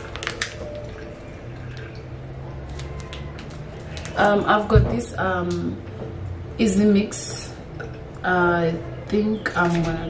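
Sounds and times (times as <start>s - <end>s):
paper packet crinkling: 0.0s - 2.0s, 2.6s - 4.2s.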